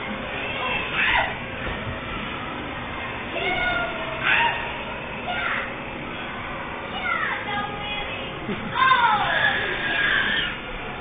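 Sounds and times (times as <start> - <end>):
children playing: 0.0 - 11.0
children squealing: 0.6 - 1.4, 4.2 - 4.8, 8.8 - 10.7
child gliding cry: 8.8 - 10.6.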